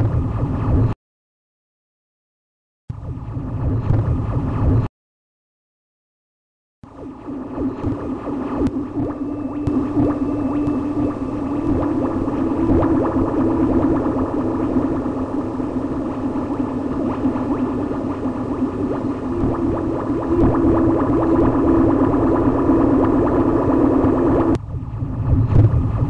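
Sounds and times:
crackling gurgling amplified branch: 6.9s - 24.6s
steady low drone: 6.9s - 26.0s.

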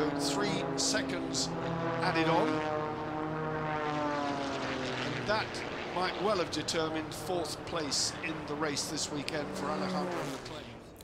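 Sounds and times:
propeller plane engine droning: 0.0s - 11.0s.

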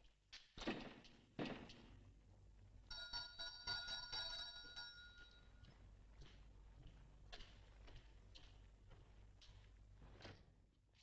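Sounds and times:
small bell jangling: 2.9s - 5.4s.

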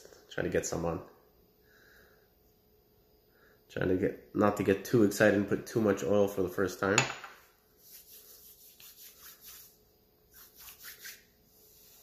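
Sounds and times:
hands rubbing together: 7.8s - 12.0s.

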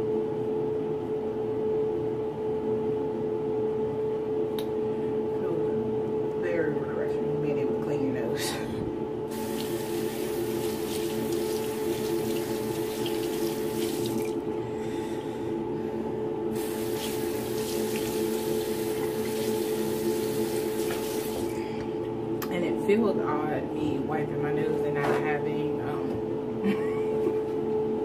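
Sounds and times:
steady hum: 0.0s - 28.0s
sink tap running water: 9.3s - 14.5s, 16.6s - 21.6s.

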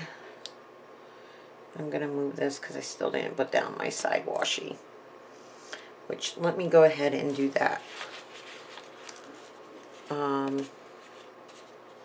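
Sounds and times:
paper sticker sheet rustling: 7.3s - 12.0s.

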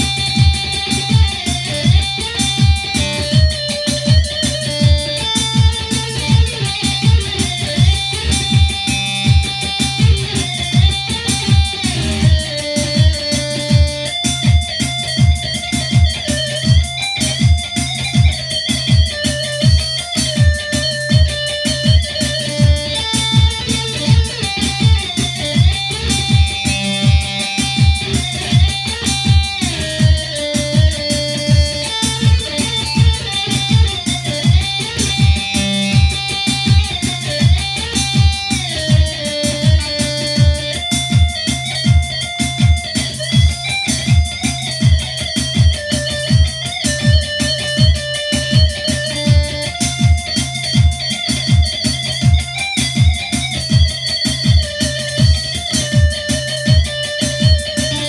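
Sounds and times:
plucked saz melody: 0.0s - 58.0s
steady low beat: 0.0s - 58.0s.

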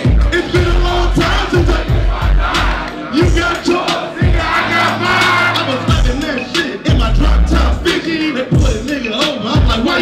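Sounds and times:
crowd shouting along: 0.0s - 6.2s
hip-hop music through speakers: 0.0s - 10.0s.

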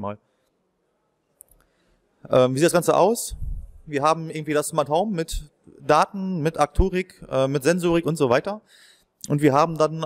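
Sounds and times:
man speaking: 0.0s - 0.2s, 2.2s - 10.0s.

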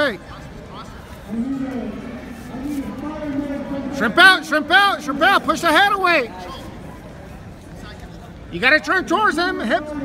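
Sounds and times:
indistinct voices in a large hall: 0.0s - 10.0s.

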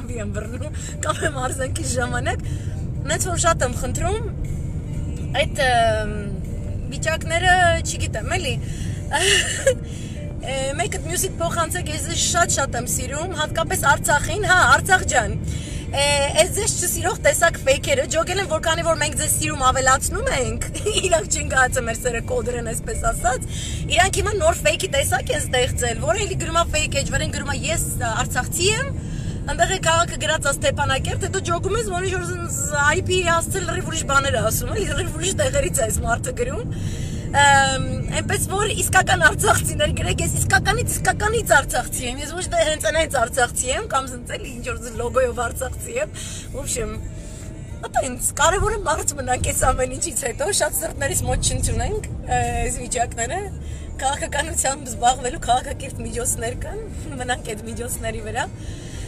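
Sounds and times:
woman talking: 0.0s - 2.4s, 3.0s - 4.3s, 5.2s - 9.8s, 10.4s - 47.1s, 47.7s - 58.6s
car cabin road rumble: 0.0s - 59.0s.

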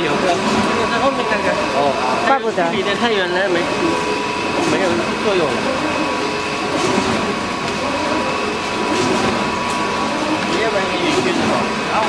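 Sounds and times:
machine running with high whine: 0.0s - 12.0s.

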